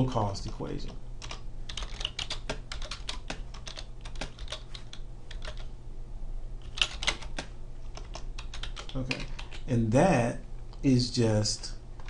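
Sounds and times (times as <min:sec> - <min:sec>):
faint low hum: 0:00.0 - 0:12.0
typing on computer keyboard: 0:01.2 - 0:05.7, 0:06.6 - 0:09.7.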